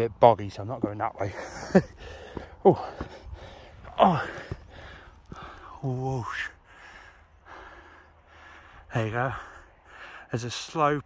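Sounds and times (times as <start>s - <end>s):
man breathing hard: 2.0s - 5.8s, 6.4s - 10.4s.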